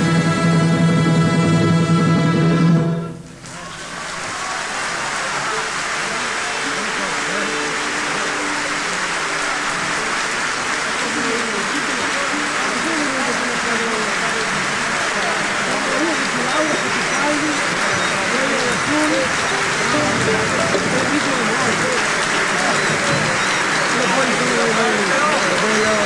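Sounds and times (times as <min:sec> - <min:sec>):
orchestra playing: 0:00.0 - 0:03.4, 0:05.7 - 0:26.0
audience applauding: 0:03.2 - 0:26.0
voices: 0:03.4 - 0:26.0.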